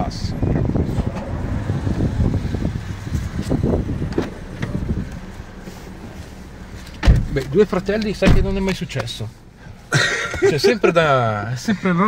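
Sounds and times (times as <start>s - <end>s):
wind rumbling: 0.0s - 7.4s
car engine idling: 0.0s - 12.0s.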